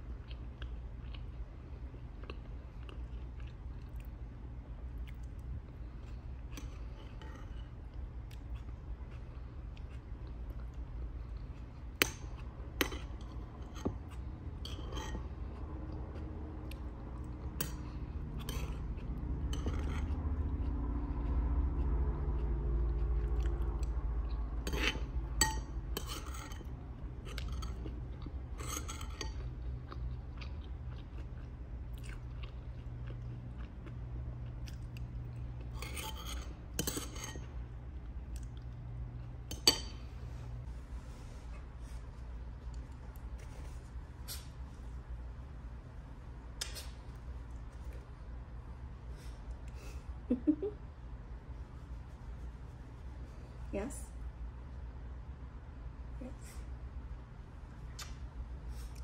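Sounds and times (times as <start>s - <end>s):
person chewing: 0.0s - 40.4s
steady low hum: 0.0s - 59.0s.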